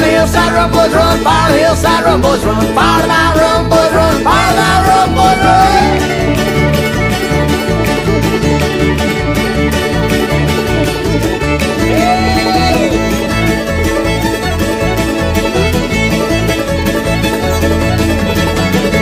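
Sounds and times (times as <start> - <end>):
banjo: 0.0 - 19.0
fiddle: 0.0 - 19.0
stringband playing: 0.0 - 19.0
upright bass: 0.0 - 19.0.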